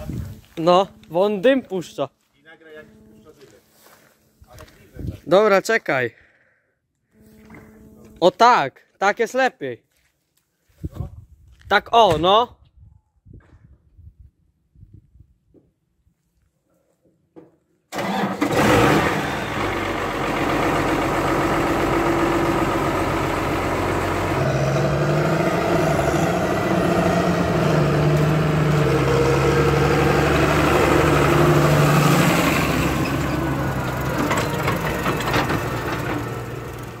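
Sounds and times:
tractor diesel engine running: 0:17.9 - 0:37.0.

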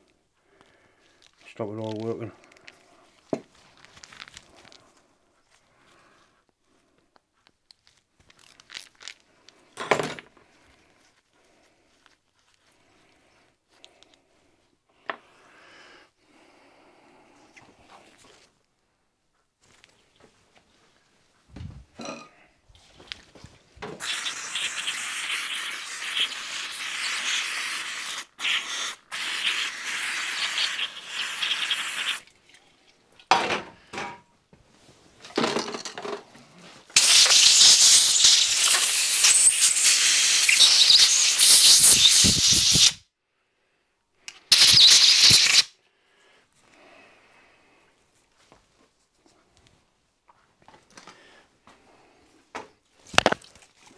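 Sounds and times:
compressed air hissing: 0:24.0 - 0:32.2, 0:37.0 - 0:43.0, 0:44.5 - 0:45.7.

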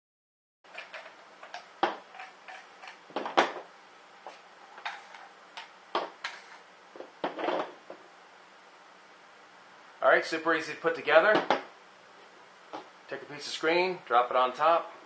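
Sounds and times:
scraping rustles: 0:04.3 - 0:05.3, 0:06.2 - 0:07.8.

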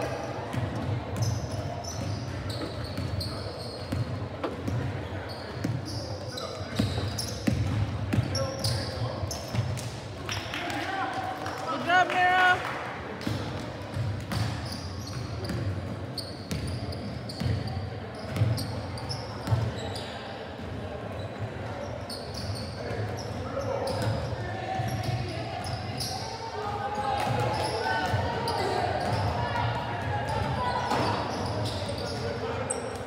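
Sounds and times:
players' voices: 0:00.0 - 0:15.8, 0:16.5 - 0:33.0
sneaker squeaks: 0:00.5 - 0:10.5, 0:13.9 - 0:20.4, 0:21.1 - 0:26.4, 0:27.3 - 0:29.6, 0:30.2 - 0:33.0.

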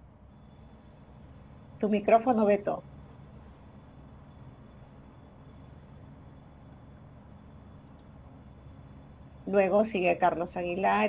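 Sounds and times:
faint high whine: 0:00.0 - 0:11.0
low hum and hiss: 0:00.0 - 0:11.0.

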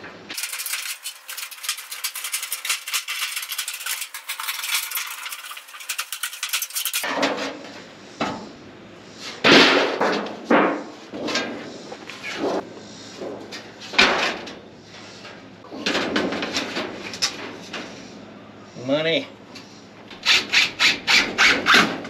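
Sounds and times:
sheet metal rattling crashes: 0:00.3 - 0:07.4.

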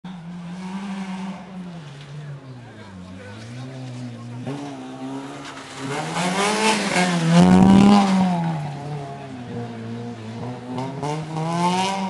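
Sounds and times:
rally car engine revving: 0:00.1 - 0:12.0.

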